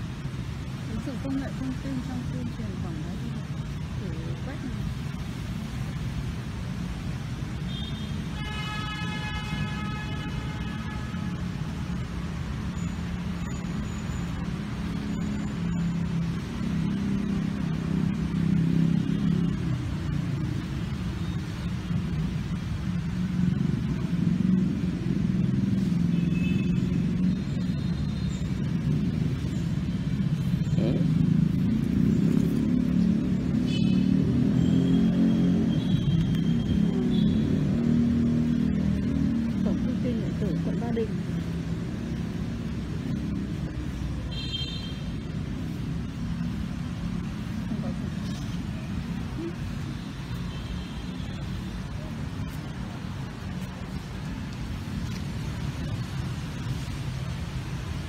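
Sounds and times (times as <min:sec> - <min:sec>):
road traffic rumble: 0:00.0 - 0:58.0.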